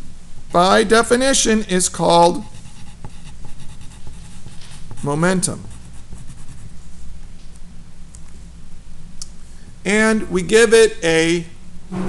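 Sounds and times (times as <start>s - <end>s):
pen writing on paper: 2.5s - 6.6s.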